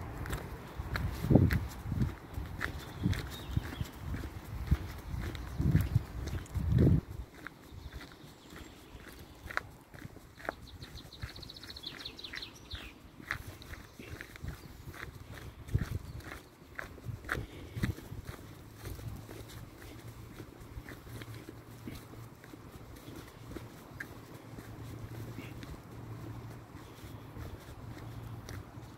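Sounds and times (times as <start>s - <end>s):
dull low bumps: 0.0s - 12.1s, 13.2s - 28.9s
footsteps on gravel and leaves: 0.0s - 28.9s.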